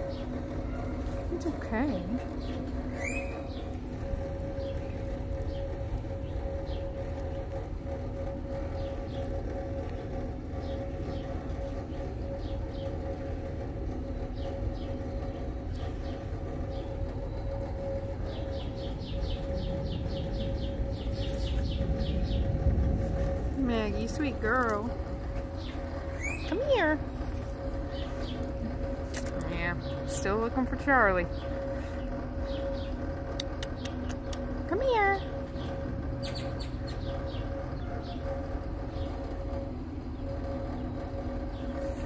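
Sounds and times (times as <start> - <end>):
birds chirping: 0.0 - 42.0
low rumble: 0.0 - 42.0
steady tonal hum: 0.0 - 42.0.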